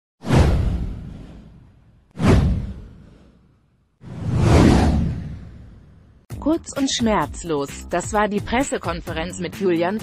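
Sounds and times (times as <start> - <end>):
deep boom: 0.2 - 3.1
whoosh sound effect: 0.2 - 6.1.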